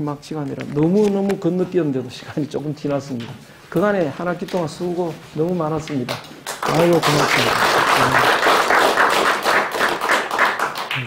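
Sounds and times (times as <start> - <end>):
audience applauding: 6.4 - 11.0.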